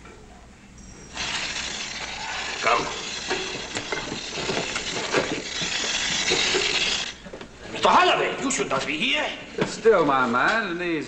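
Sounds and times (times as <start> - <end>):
fuse hissing and sputtering: 1.1 - 7.2.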